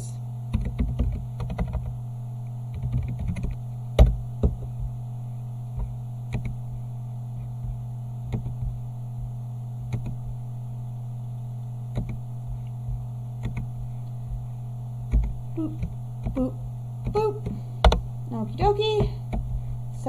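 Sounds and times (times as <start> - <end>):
steady low hum: 0.0 - 20.0
typing on computer keyboard: 0.5 - 1.9, 2.7 - 4.1, 12.0 - 12.2, 13.4 - 13.7, 15.1 - 16.4.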